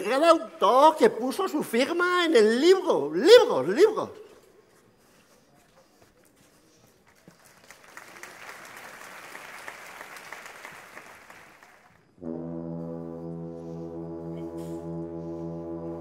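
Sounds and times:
audience applause: 7.1 - 12.0
wind band brass chord: 12.2 - 16.0.

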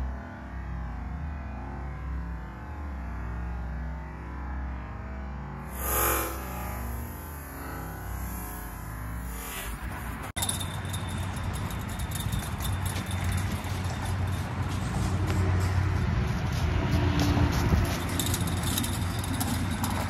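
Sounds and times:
footsteps crunching dry leaves: 13.0 - 19.9.

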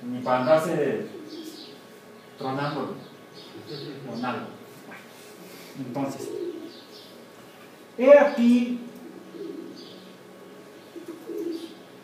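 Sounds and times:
low room hum: 0.0 - 12.0
pigeon cooing: 1.0 - 1.9, 3.3 - 7.2, 8.8 - 12.0.

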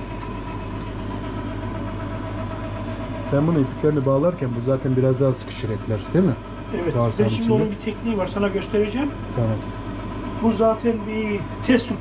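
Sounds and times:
electric meat grinder humming: 0.0 - 12.0.

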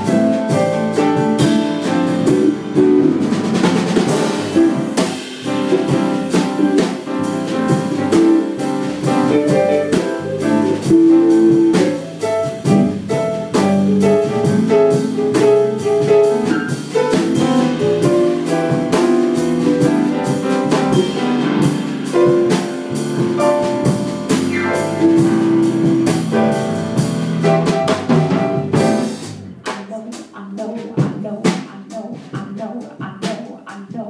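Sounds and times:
drum kit keeping time: 0.0 - 34.0.

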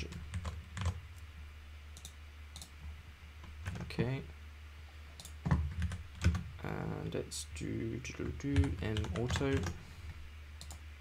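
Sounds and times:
steady low hum: 0.0 - 11.0
computer key clicks: 2.0 - 2.7, 10.6 - 10.8.

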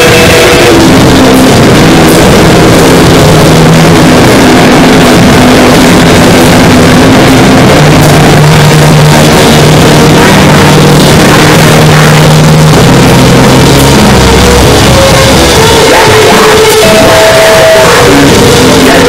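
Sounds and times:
distorted static noise: 0.0 - 19.0
droning low tones: 0.0 - 19.0.

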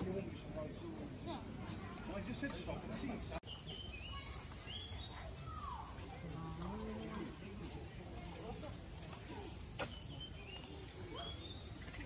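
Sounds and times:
bird chirps: 3.4 - 5.9, 9.7 - 12.0.

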